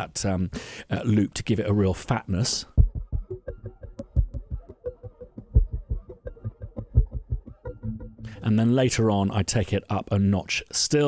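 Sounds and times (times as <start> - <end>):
overdriven guitar loop with sub bass: 2.8 - 8.7.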